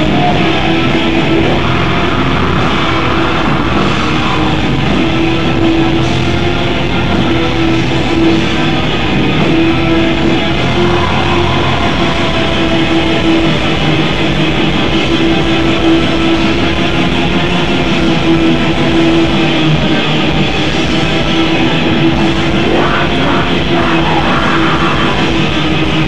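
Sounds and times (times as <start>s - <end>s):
distorted electric guitars: 0.0s - 26.0s.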